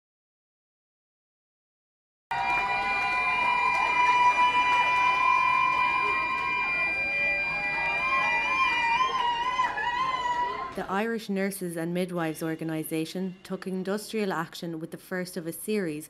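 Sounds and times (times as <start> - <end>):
long steady high tone: 2.3 - 10.7
crowd cheering and calling out: 2.3 - 10.9.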